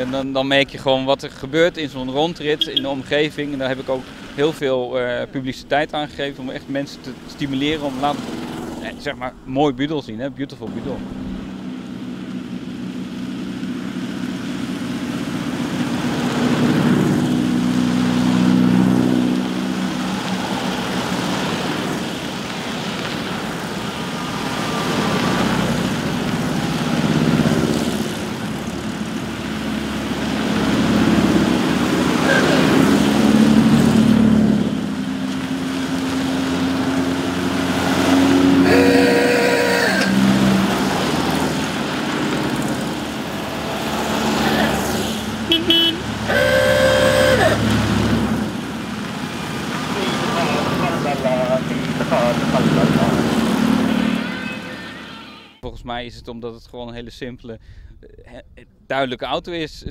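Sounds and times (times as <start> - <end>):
cars driving past: 0.0 - 55.5
car horn toot: 2.6 - 3.0, 38.6 - 40.3, 45.4 - 47.7, 53.8 - 55.6.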